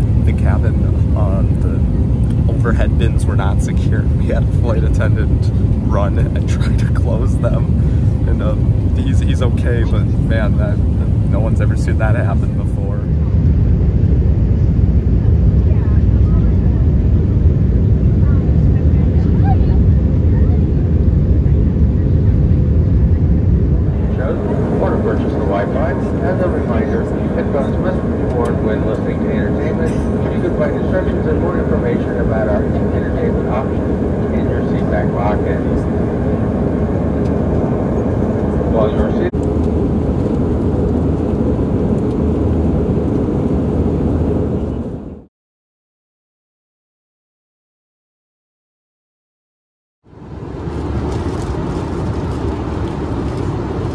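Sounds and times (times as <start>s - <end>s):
airliner cabin engine rumble: 0.0s - 45.3s, 50.1s - 53.9s
indistinct voices: 23.1s - 39.4s.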